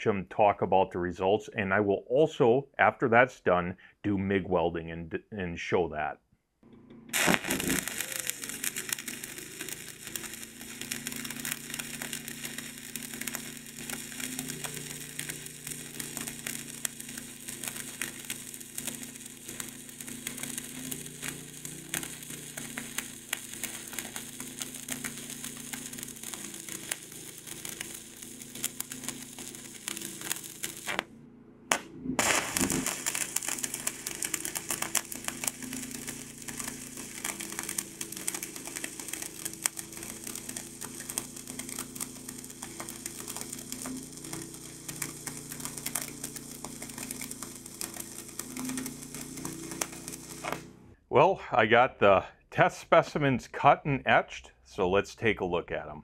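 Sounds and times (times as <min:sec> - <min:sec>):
stick welding arc crackling: 0:07.1 - 0:51.0.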